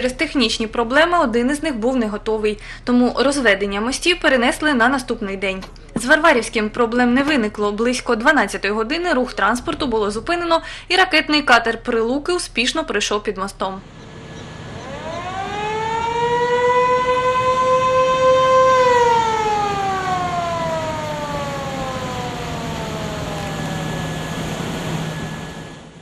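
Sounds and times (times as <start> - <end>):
low steady hum: 0.0 - 26.0
motor-driven siren wailing: 13.8 - 26.0.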